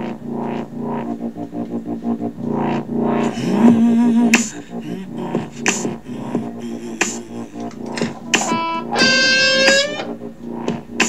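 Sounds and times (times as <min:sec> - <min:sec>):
rock backing track: 0:07.0 - 0:11.0
electric guitar lead line: 0:07.6 - 0:10.2.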